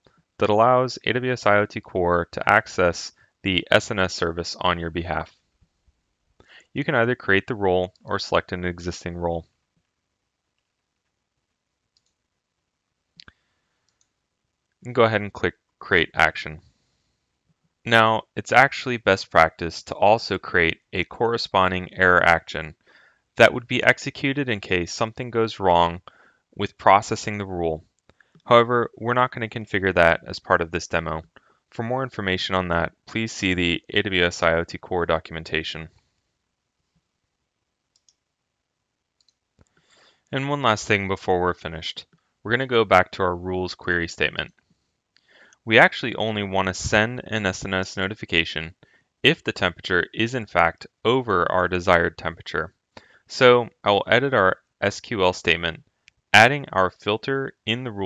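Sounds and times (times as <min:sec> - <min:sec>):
mouse click: 0:37.9 - 0:38.2.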